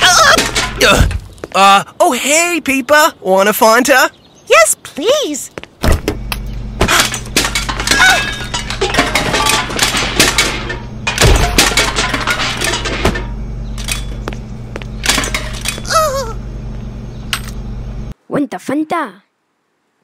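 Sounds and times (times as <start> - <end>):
cartoon groceries clattering: 0.0 - 1.6, 5.8 - 14.3, 14.9 - 16.4
steady low hum: 5.5 - 18.2.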